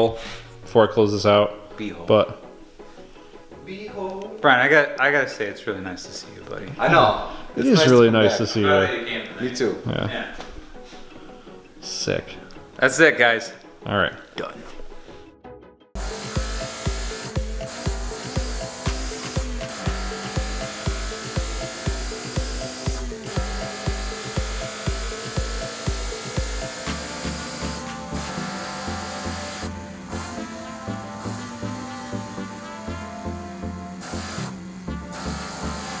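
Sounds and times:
background music with kick drum: 6.1s - 8.8s, 13.9s - 36.0s.

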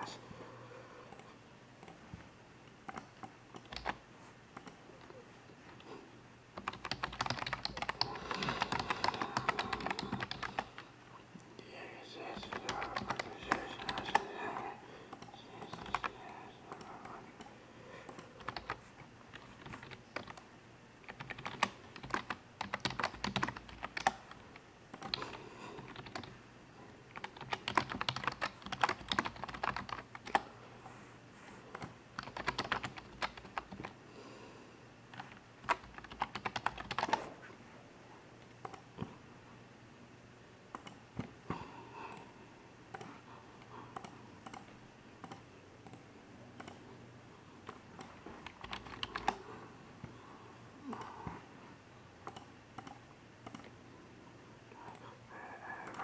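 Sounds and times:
computer keyboard typing: 2.8s - 5.9s, 6.6s - 10.9s, 12.3s - 26.4s, 27.1s - 30.5s, 31.7s - 34.0s, 35.1s - 37.3s, 42.9s - 46.9s, 47.6s - 49.6s, 52.2s - 53.7s, 55.8s - 56.0s
background voices: 8.0s - 18.4s.

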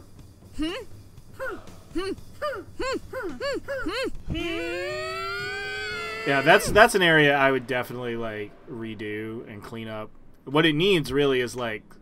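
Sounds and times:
person humming: 0.6s - 5.4s.

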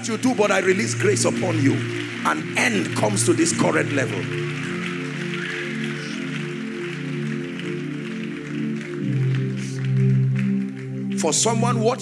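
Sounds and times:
slow keyboard chords: 0.0s - 12.0s.

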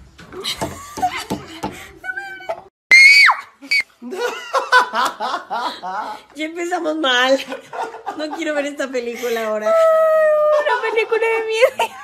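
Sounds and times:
high-pitched scream: 2.9s - 3.8s.

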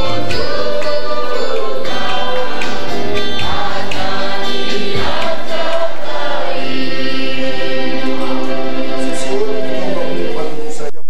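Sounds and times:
choir singing gospel song: 0.0s - 10.9s.

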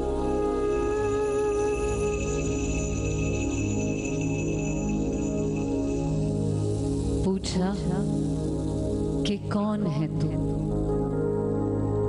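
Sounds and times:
thin steady high tone: 0.0s - 8.8s.

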